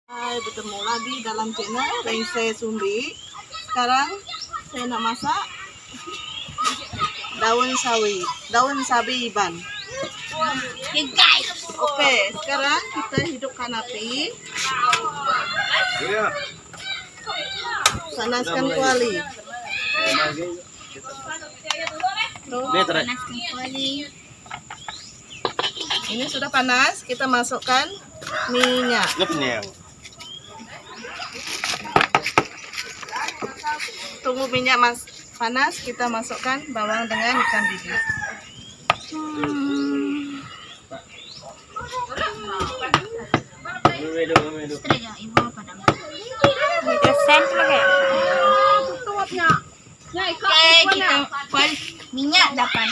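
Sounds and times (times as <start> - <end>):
voices: 0.0 - 52.9.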